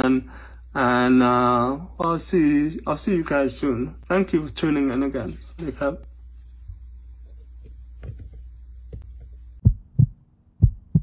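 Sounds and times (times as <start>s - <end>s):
heartbeat thumps: 8.0s - 11.0s.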